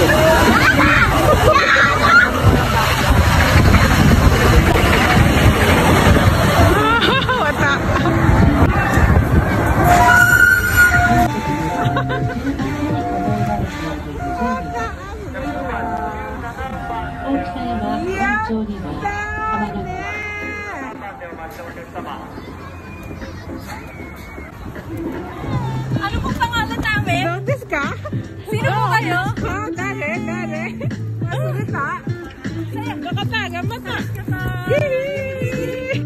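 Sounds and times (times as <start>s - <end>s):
babble of voices: 0.0s - 36.0s.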